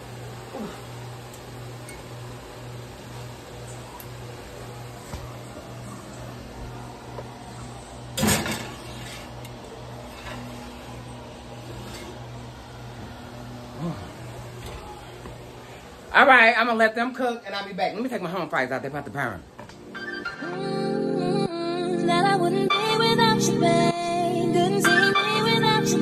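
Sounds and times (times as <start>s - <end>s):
low appliance hum: 0.0s - 26.0s.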